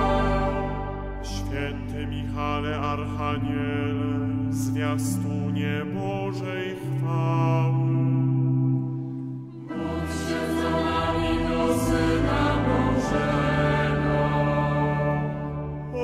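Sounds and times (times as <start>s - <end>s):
choir singing a slow chant: 0.0s - 8.4s, 9.5s - 16.0s.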